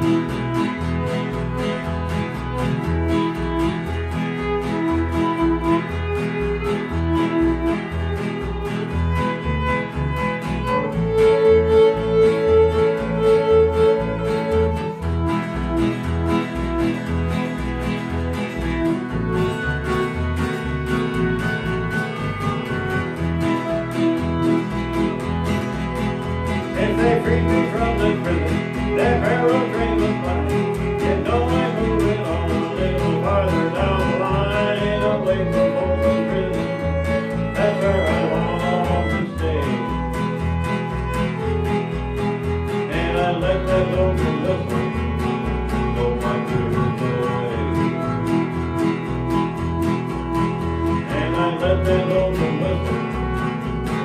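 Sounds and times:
bowed fiddle melody: 0:00.0 - 0:54.0
electric bass line: 0:00.0 - 0:54.0
strummed acoustic guitar: 0:00.0 - 0:54.0.

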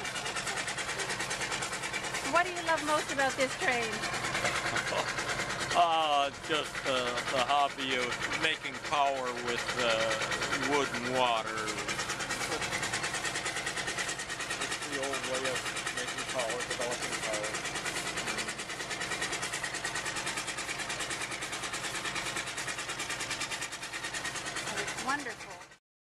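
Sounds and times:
steam traction engine running: 0:00.0 - 0:25.8
voices in background: 0:02.2 - 0:12.8, 0:14.8 - 0:18.7.

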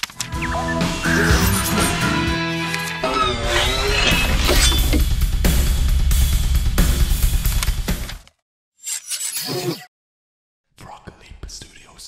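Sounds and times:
person whispering: 0:10.8 - 0:12.0.

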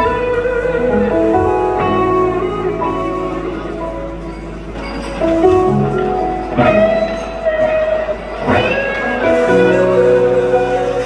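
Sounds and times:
bass guitar: 0:00.0 - 0:11.0
held electric guitar notes: 0:00.0 - 0:11.0
rock band playing slow ballad: 0:00.0 - 0:11.0.

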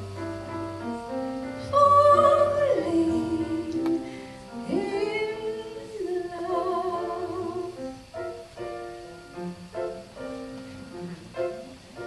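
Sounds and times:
musical accompaniment: 0:00.0 - 0:12.0
woman singing: 0:01.6 - 0:07.9.

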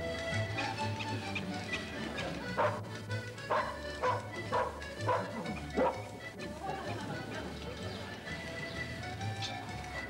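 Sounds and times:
background music: 0:00.0 - 0:10.0
dog barking: 0:02.6 - 0:02.8, 0:03.5 - 0:06.0.

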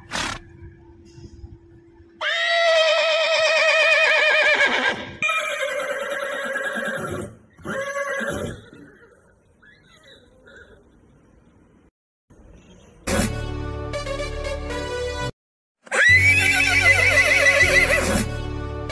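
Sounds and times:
horse whinnying: 0:02.2 - 0:09.2, 0:15.8 - 0:18.2.

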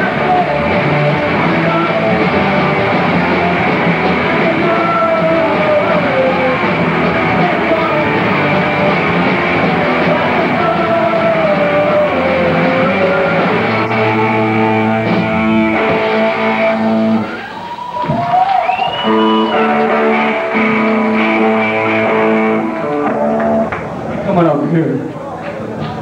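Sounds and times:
distorted electric guitar chords: 0:00.0 - 0:17.5, 0:19.0 - 0:24.2
punk band playing live: 0:00.0 - 0:24.3.

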